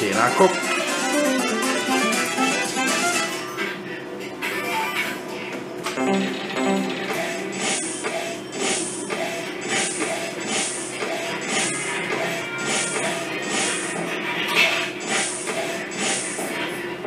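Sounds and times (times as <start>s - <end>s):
slot machine game music: 0.0s - 3.7s, 6.0s - 8.0s.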